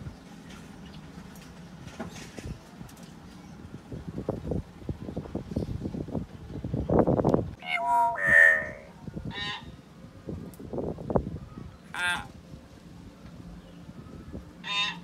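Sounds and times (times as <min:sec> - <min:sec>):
myna calling: 0:07.6 - 0:09.6.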